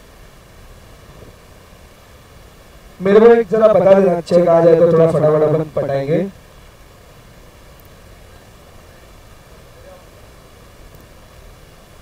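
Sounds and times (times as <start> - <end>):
light hiss: 0.0 - 12.0.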